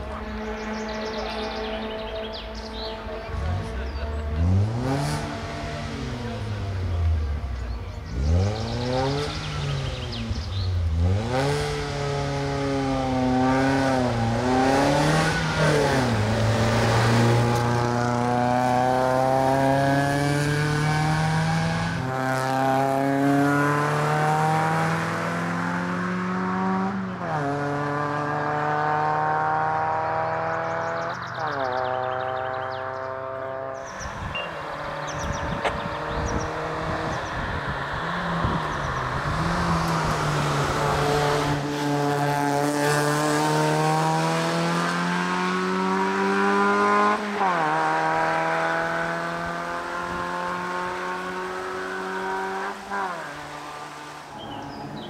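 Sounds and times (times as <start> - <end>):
car engine revving hard: 0.0 - 55.0.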